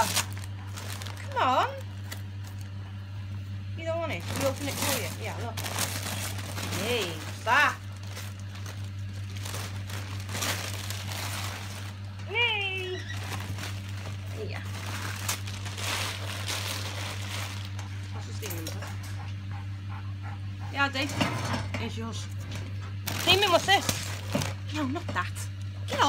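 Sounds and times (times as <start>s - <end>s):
wrapping paper crinkling: 0.0s - 2.8s, 4.2s - 18.1s, 23.0s - 24.7s.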